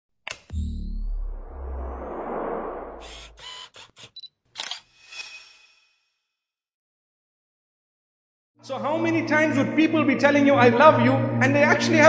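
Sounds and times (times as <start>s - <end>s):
low rumbling swell: 1.1s - 3.4s.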